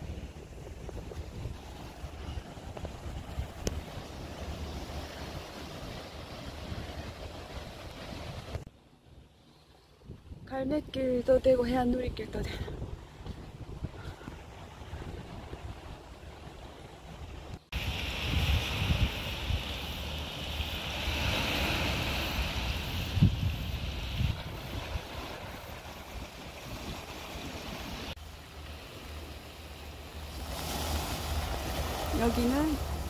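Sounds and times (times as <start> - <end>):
wind rumbling on microphone: 0.0 - 33.0
waves washing onto pebble beach: 17.8 - 33.0.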